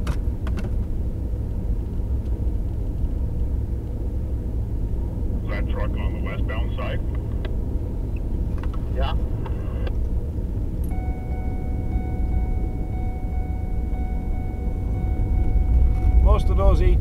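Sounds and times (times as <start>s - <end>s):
engine and road rumble: 0.0s - 17.0s
high electronic tone: 10.9s - 17.0s.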